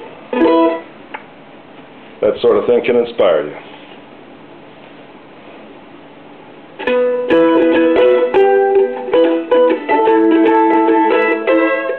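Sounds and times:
mandolin chord strummed: 0:00.0 - 0:00.9, 0:06.8 - 0:11.9.

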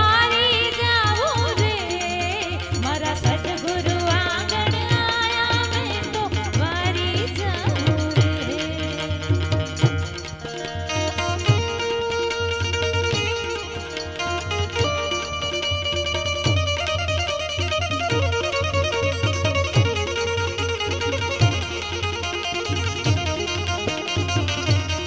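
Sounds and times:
plucked string melody: 0:00.0 - 0:25.0
tabla drumming: 0:00.0 - 0:25.0.

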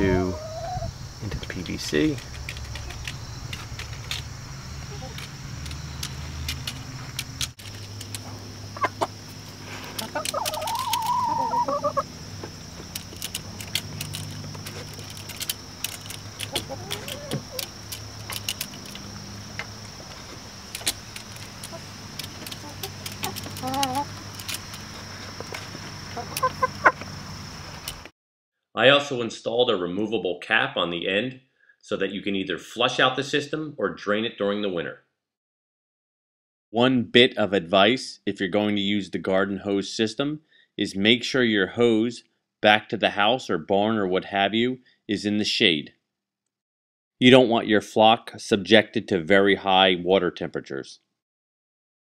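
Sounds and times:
hens clucking: 0:00.0 - 0:03.2, 0:04.8 - 0:05.3, 0:08.1 - 0:14.2, 0:15.6 - 0:28.0
beaks pecking at drinkers: 0:01.2 - 0:28.1.

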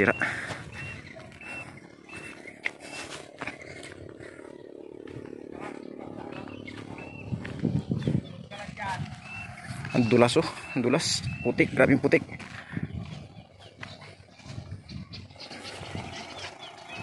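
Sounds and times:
distant small engine humming: 0:00.0 - 0:17.0.

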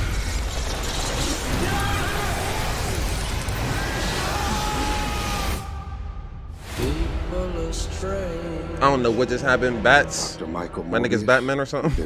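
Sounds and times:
bat wings fluttering: 0:00.0 - 0:04.9.

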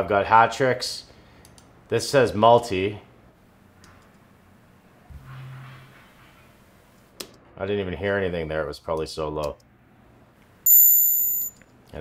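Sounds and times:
thin piercing synth tone: 0:10.7 - 0:11.5.

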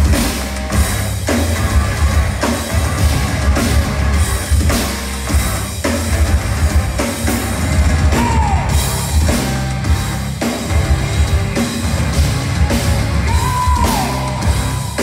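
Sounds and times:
rock band playing live: 0:00.0 - 0:15.0.

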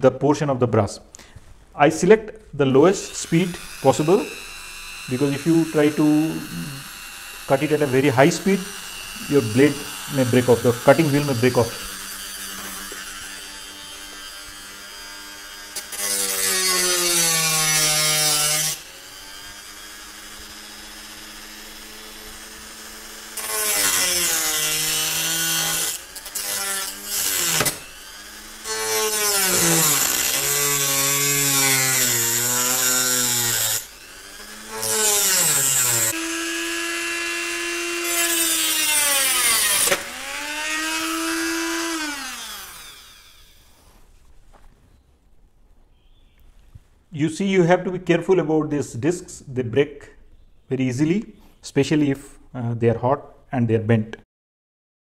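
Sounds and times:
rotary tool cutting metal: 0:02.8 - 0:43.8.

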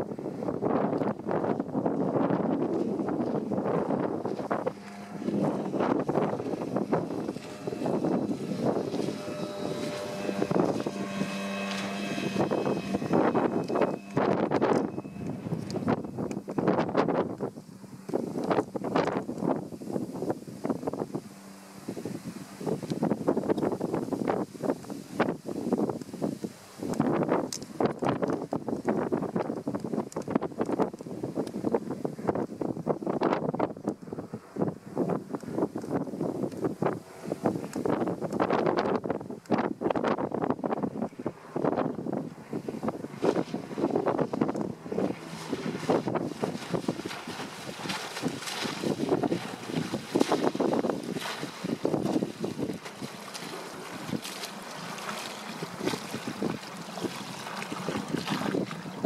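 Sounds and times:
distant outboard motor hum: 0:00.0 - 0:59.0
wind buffeting microphone: 0:00.0 - 0:59.0.

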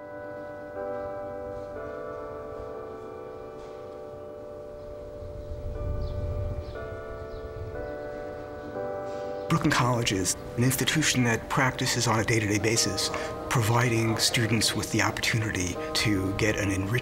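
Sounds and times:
bells chiming slowly: 0:00.0 - 0:17.0.

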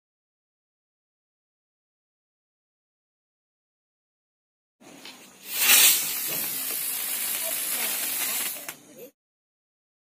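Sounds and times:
firework hissing: 0:04.9 - 0:09.2.

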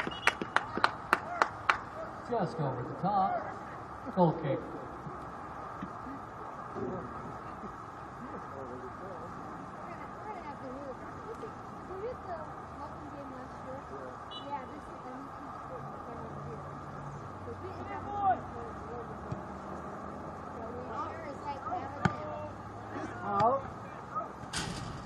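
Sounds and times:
distant calls and shouts: 0:16.7 - 0:24.8.

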